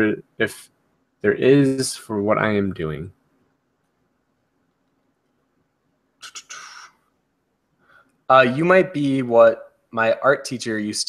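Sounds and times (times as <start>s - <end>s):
mouth clicks: 6.2s - 7.0s
short breath: 7.8s - 8.2s.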